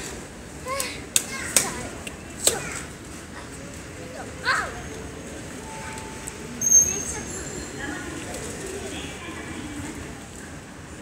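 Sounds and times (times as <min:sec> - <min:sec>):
station background noise: 0:01.7 - 0:11.0.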